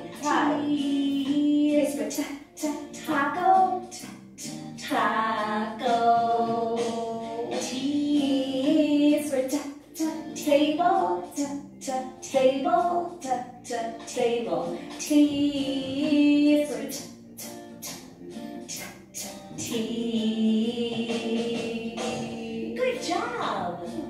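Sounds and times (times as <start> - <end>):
woman singing: 0.0 - 4.1, 4.8 - 18.0, 18.7 - 24.0.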